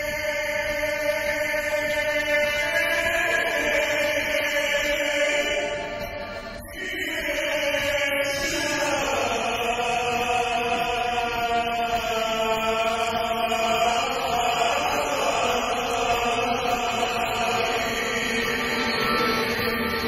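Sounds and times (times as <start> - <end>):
audience singing in unison: 0.0 - 20.0.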